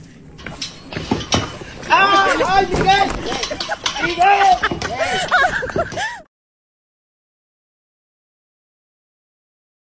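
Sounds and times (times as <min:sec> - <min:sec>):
footsteps on wooden planks: 0:00.4 - 0:06.2.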